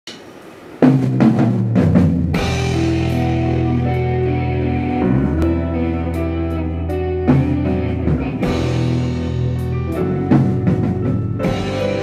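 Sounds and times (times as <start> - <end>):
drum kit fill: 0.1 - 12.0
rock band held chord: 0.8 - 12.0.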